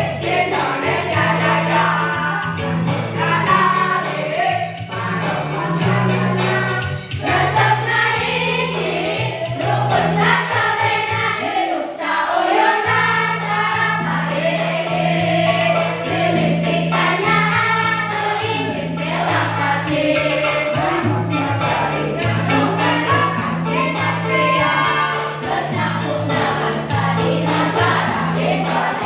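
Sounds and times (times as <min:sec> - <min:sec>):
held bass notes: 0:00.0 - 0:11.4, 0:12.9 - 0:29.0
students singing in unison: 0:00.0 - 0:29.0.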